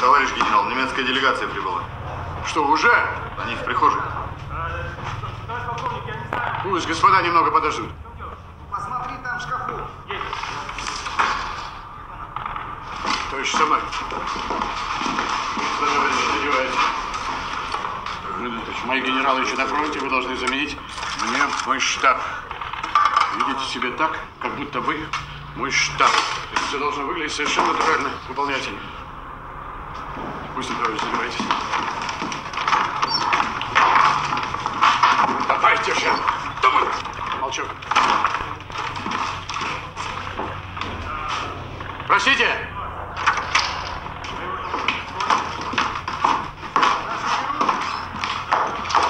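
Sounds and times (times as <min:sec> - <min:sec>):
footsteps: 0:03.2 - 0:07.4, 0:08.3 - 0:28.8, 0:29.8 - 0:42.4, 0:43.1 - 0:49.0
rustling and shuffling: 0:10.0 - 0:25.3, 0:30.0 - 0:42.3.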